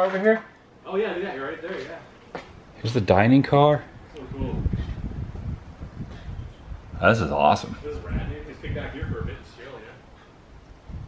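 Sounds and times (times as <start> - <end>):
wind buffeting microphone: 2.5 - 11.0.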